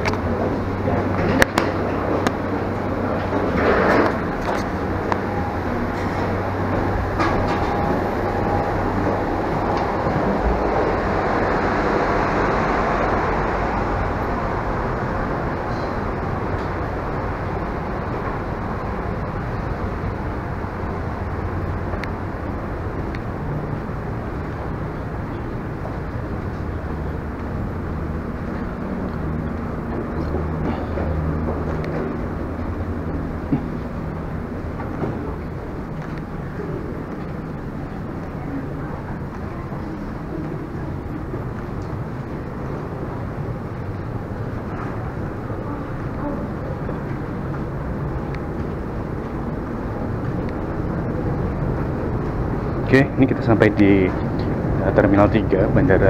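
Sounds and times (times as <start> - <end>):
broad rushing noise: 0.0 - 56.0
low mechanical hum: 0.0 - 56.0.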